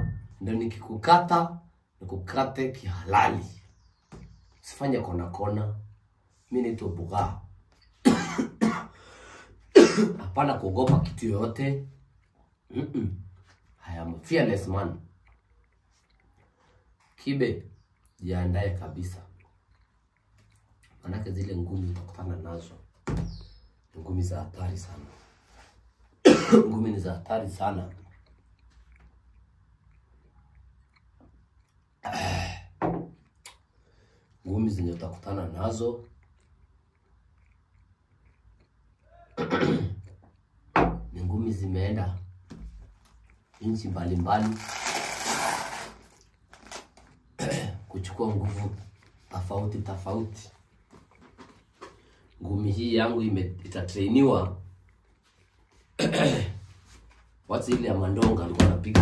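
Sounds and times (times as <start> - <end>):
man coughing: 8.0 - 9.1, 9.7 - 10.3, 12.7 - 13.2, 26.2 - 26.8, 32.0 - 32.7, 39.4 - 40.0, 47.4 - 47.9, 56.0 - 56.6.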